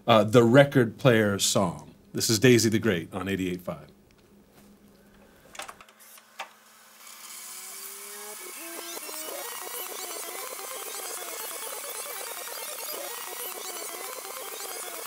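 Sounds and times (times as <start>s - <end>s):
tape winding whirring: 5.6s - 15.0s.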